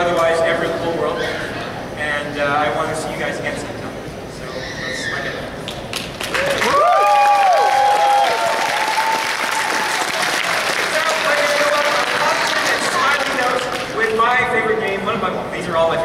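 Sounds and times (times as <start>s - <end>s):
audience applause: 5.9s - 14.0s
whooping cheers: 6.3s - 10.3s.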